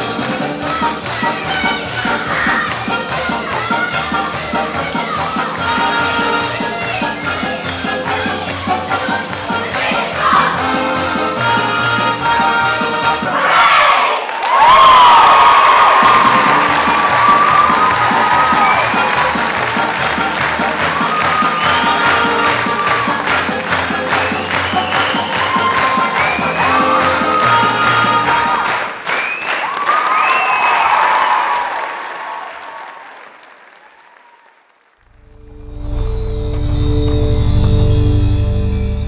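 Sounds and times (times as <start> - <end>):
loud music: 0.0 - 13.6, 15.8 - 28.9
audience applauding and cheering: 13.4 - 35.4.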